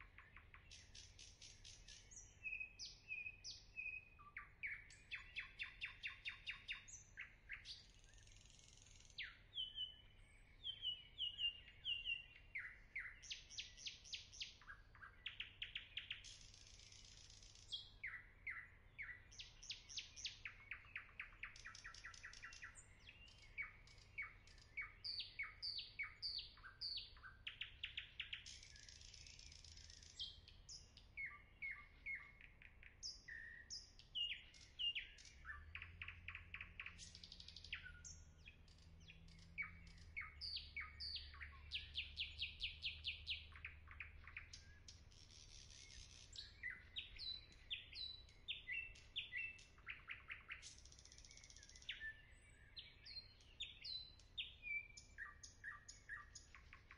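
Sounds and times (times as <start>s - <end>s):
songbird chirping and trilling: 0.0s - 56.9s.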